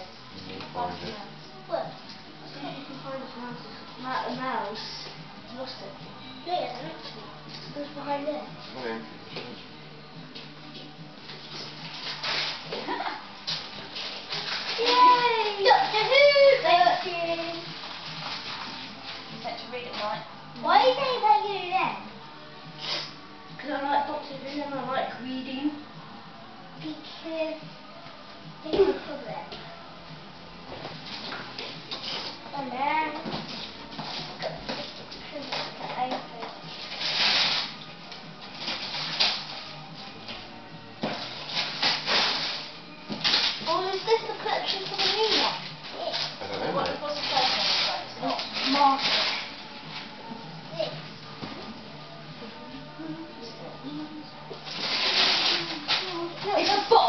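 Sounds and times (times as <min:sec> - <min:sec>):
faint television music: 0:00.0 - 0:57.0
papery rustling and crackling: 0:11.3 - 0:20.2, 0:33.4 - 0:37.8, 0:38.4 - 0:39.7, 0:41.1 - 0:50.1, 0:54.6 - 0:57.0.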